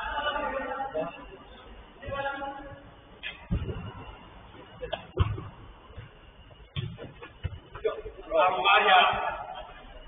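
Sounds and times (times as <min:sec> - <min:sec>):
football being kicked: 0:05.2 - 0:06.1, 0:06.7 - 0:07.8.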